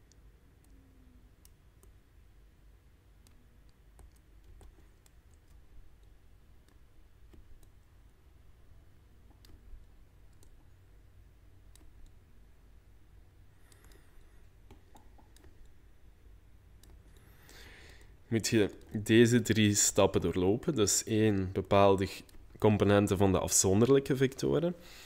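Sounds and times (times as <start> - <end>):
low room hum: 0.0 - 25.0
faint clicks and taps: 3.2 - 8.2, 9.2 - 10.8, 11.7 - 12.2, 13.6 - 15.8, 16.8 - 19.0.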